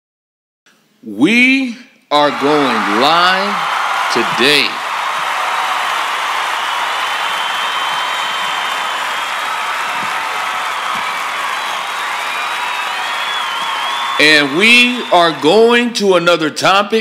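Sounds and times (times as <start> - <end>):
audience applauding and cheering: 2.2 - 16.2
faint high whistles: 7.0 - 10.1, 10.7 - 15.3.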